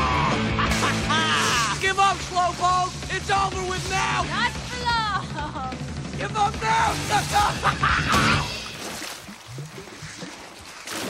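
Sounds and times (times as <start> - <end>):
sharp splash: 0.6 - 5.0, 6.8 - 11.0
water swishing and splashing: 0.7 - 11.0.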